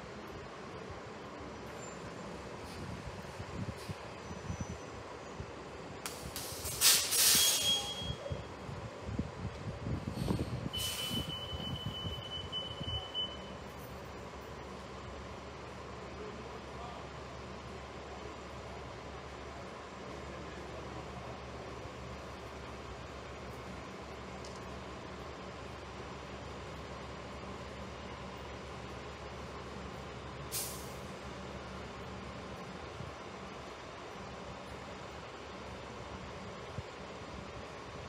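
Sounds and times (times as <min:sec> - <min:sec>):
bus engine rumble: 0:00.0 - 0:38.0
air brake hiss: 0:06.1 - 0:08.2, 0:10.0 - 0:11.8, 0:30.5 - 0:31.1
high-pitched electronic warning tone: 0:07.4 - 0:08.4, 0:10.8 - 0:13.6.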